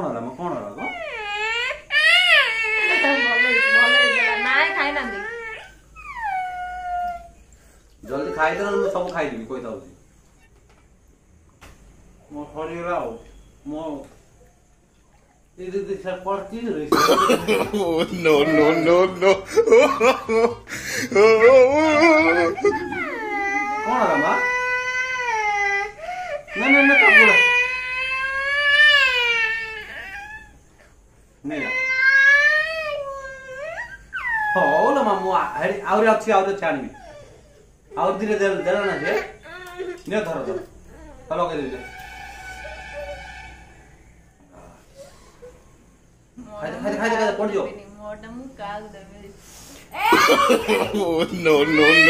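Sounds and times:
girl crying: 18.1s - 24.2s, 50.0s - 50.9s.

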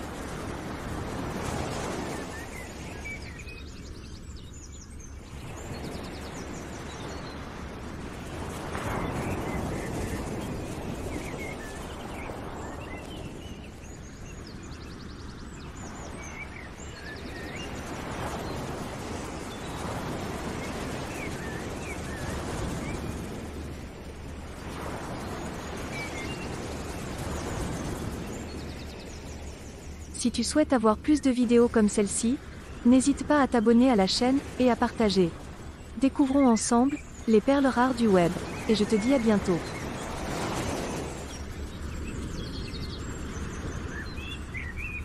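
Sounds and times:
steady rushing noise: 0.0s - 45.0s
birds chirping: 0.6s - 45.0s.

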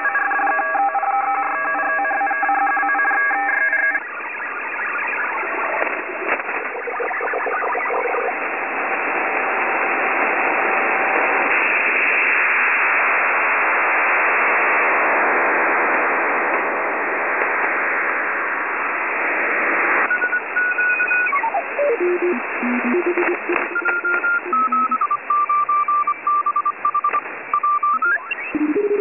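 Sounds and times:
radio static hiss: 3.9s - 29.0s
pulsing beeps: 20.1s - 29.0s.

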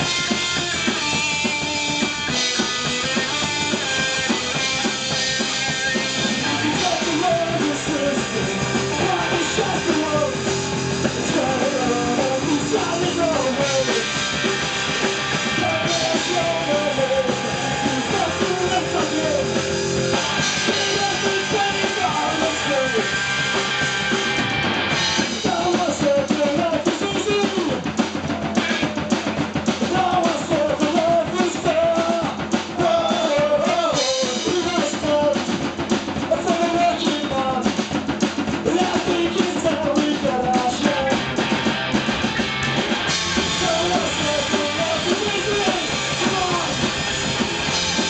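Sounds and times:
distorted electric guitar: 0.0s - 48.0s
fast drum kit: 0.0s - 48.0s.

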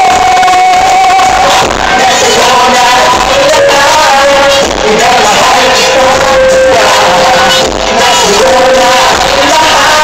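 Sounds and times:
crowd cheering: 0.0s - 4.2s
live pop music: 0.0s - 10.0s
singer holding long note: 0.0s - 10.0s.

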